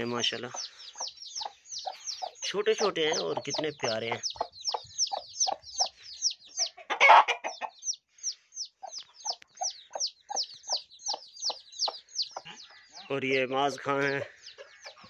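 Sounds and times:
chicks peeping: 0.0 - 15.0
hen clucking: 0.0 - 15.0.

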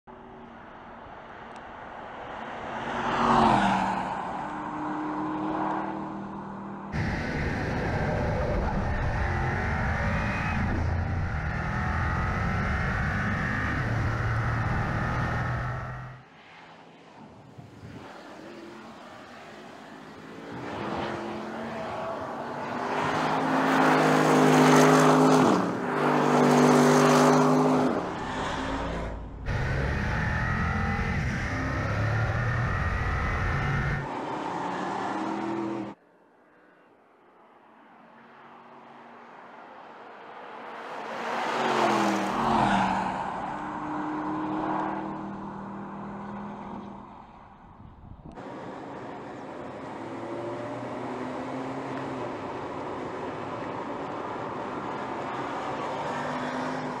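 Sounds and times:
road and tyre noise: 0.0 - 57.0.

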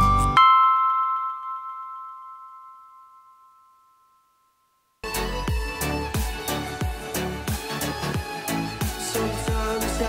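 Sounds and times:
chime-like music note ringing: 0.0 - 4.8.

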